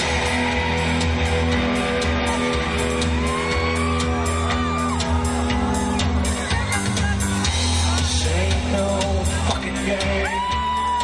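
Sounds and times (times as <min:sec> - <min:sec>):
electric guitars: 0:00.0 - 0:11.0
steady drum beat: 0:00.0 - 0:11.0.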